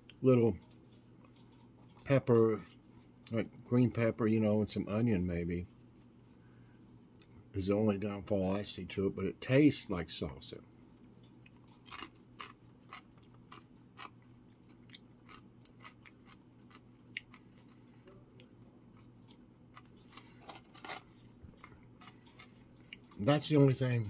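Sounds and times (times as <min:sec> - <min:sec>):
person chewing crunchy chip: 0:11.5 - 0:17.9.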